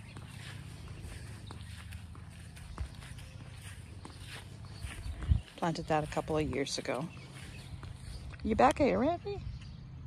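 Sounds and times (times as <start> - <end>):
footsteps on grass: 0.0 - 9.8.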